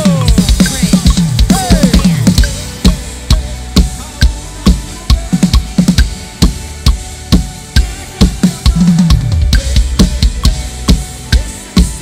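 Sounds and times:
bass drum and snare beat: 0:00.0 - 0:12.0.

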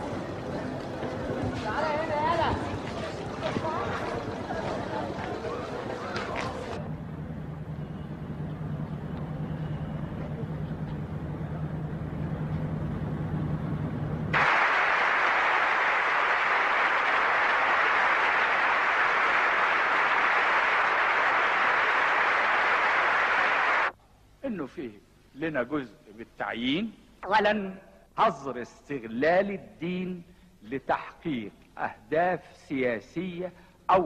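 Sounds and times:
crowd applauding: 0:14.4 - 0:23.9.

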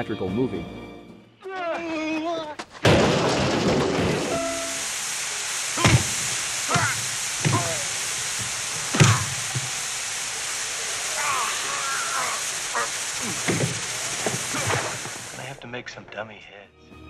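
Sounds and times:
man yelling: 0:01.4 - 0:02.6, 0:05.8 - 0:06.1, 0:06.7 - 0:08.0
showers running: 0:01.5 - 0:15.6
punches landing: 0:02.6 - 0:04.4, 0:05.8 - 0:09.8, 0:12.2 - 0:15.4
men grunting: 0:05.8 - 0:08.0, 0:08.9 - 0:09.4, 0:11.1 - 0:13.8, 0:14.4 - 0:15.1.

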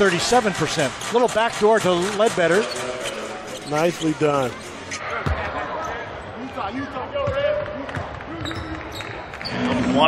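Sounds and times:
voices echoing in arena: 0:00.0 - 0:10.0.

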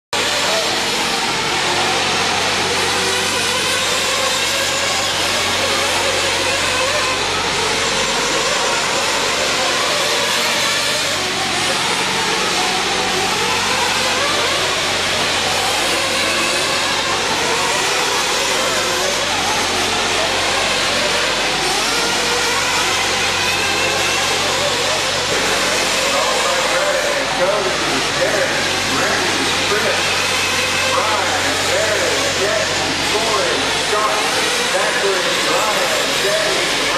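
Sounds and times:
model car engines revving: 0:00.2 - 0:36.9
voices: 0:00.2 - 0:36.9.

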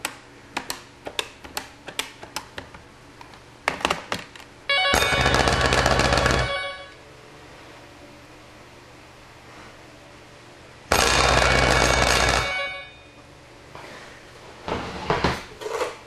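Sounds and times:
electric bell ringing: 0:04.7 - 0:07.0, 0:11.0 - 0:13.2.

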